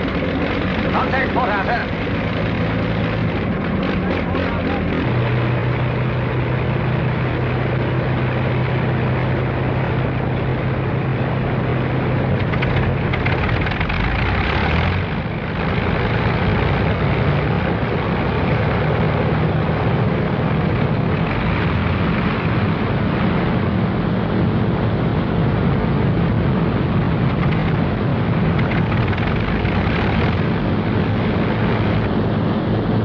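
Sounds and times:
propeller aircraft engines droning: 0:00.0 - 0:33.0.

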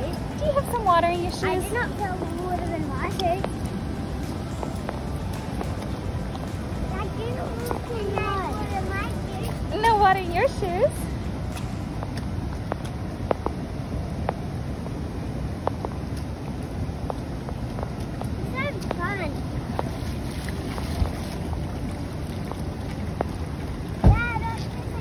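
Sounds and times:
boots splashing through water: 0:00.0 - 0:15.0, 0:15.6 - 0:25.0
water running over grass: 0:00.0 - 0:25.0
wind buffeting microphone: 0:00.0 - 0:25.0
child's high-pitched voice: 0:01.5 - 0:03.5, 0:06.9 - 0:09.8, 0:18.5 - 0:19.4, 0:24.0 - 0:25.0.

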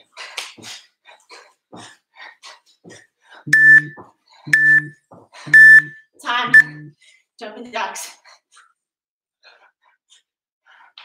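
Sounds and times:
interval timer beeping: 0:03.5 - 0:04.9, 0:05.5 - 0:06.9.

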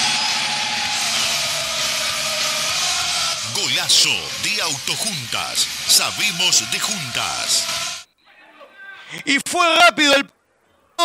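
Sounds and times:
loud steady roaring noise: 0:00.0 - 0:08.0.

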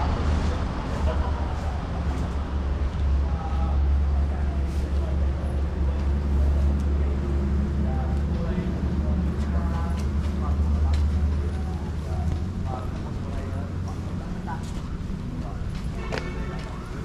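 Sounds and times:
low rumble: 0:00.0 - 0:15.5
people talking: 0:00.0 - 0:17.0.

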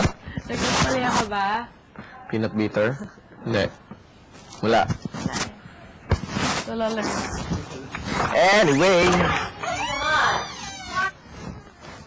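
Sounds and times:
high squeak: 0:08.7 - 0:12.0.

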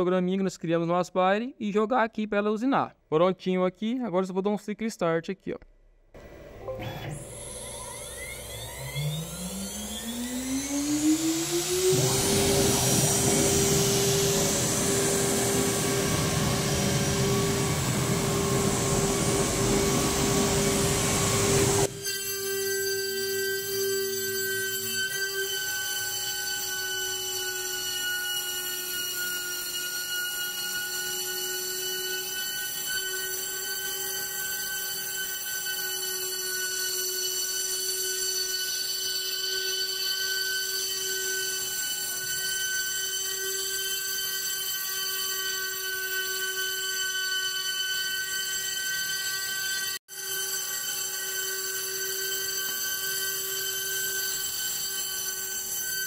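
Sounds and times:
router spindle whine: 0:06.2 - 0:56.0.

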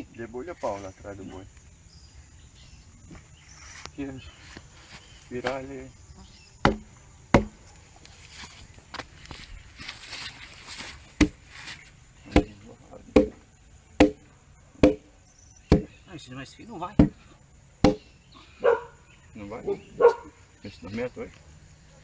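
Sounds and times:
wooden mallet knocking on log: 0:06.6 - 0:07.6, 0:12.3 - 0:13.4, 0:14.0 - 0:14.2, 0:14.8 - 0:15.0, 0:15.7 - 0:16.0, 0:17.0 - 0:17.2, 0:17.8 - 0:18.1.

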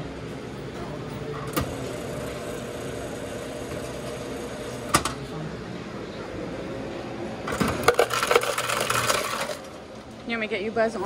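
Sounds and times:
soda dispenser humming: 0:01.5 - 0:05.3, 0:07.3 - 0:10.1.

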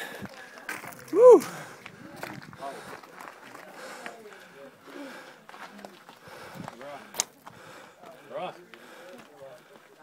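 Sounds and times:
people talking in background: 0:00.0 - 0:10.0.

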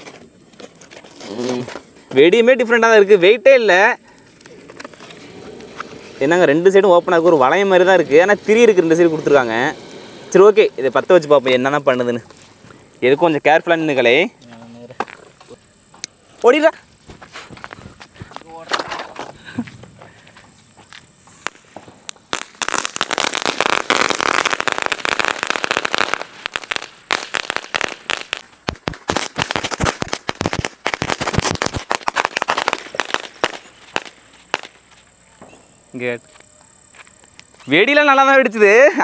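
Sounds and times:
firework sparks crackling: 0:00.0 - 0:39.0.

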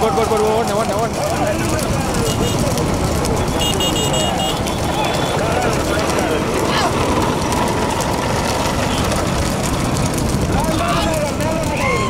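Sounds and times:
motorcycle engines: 0:00.0 - 0:12.0.

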